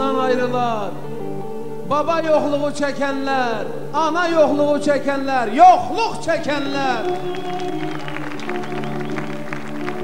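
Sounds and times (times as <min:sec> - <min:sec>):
orchestra holding sustained chord: 0:06.7 - 0:10.0.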